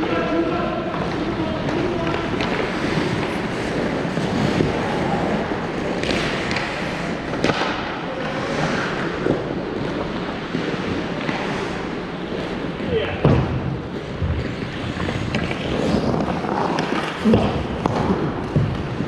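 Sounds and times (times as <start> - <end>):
players' voices echoing: 0.0 - 19.0
stick and puck clacks: 0.0 - 19.0
skate blades scraping ice: 0.2 - 13.2, 13.8 - 19.0.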